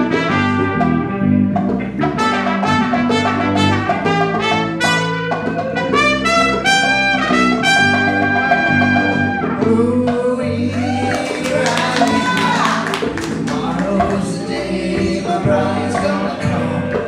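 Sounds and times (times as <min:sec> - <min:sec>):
trumpet solo: 0:00.0 - 0:09.7
electric bass: 0:00.0 - 0:17.0
electric guitar: 0:00.0 - 0:17.0.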